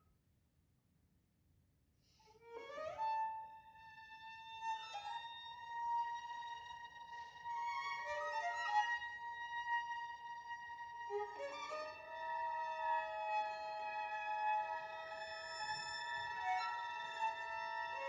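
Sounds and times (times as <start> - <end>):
bowed string chamber music: 2.7 - 18.0.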